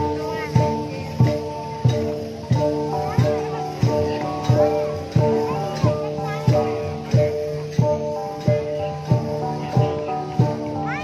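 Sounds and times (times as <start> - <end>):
gongs struck in steady beat: 0.0 - 11.0.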